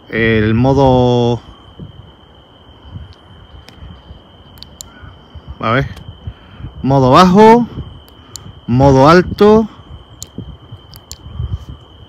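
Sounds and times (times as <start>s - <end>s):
microphone rumble: 0.0s - 2.2s, 2.8s - 12.0s
cricket trilling: 0.0s - 12.0s
faint sharp ticks: 4.5s - 5.0s, 8.0s - 8.5s, 10.2s - 11.3s.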